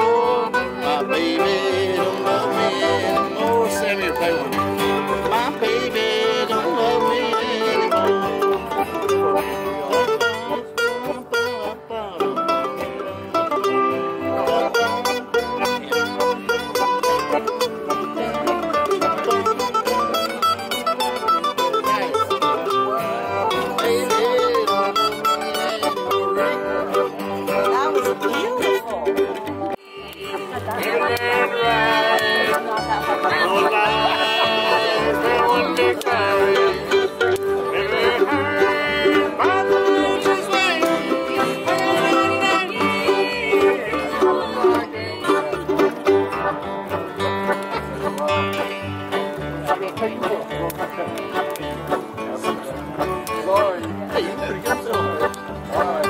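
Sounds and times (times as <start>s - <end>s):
person singing: 0.0s - 8.3s, 29.4s - 46.2s
acoustic string-band music: 0.0s - 56.0s.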